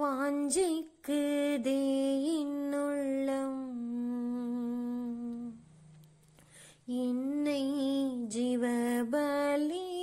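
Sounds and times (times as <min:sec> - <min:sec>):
woman singing a hymn: 0:00.0 - 0:05.6, 0:06.9 - 0:10.0
woman breathing in: 0:06.4 - 0:06.9.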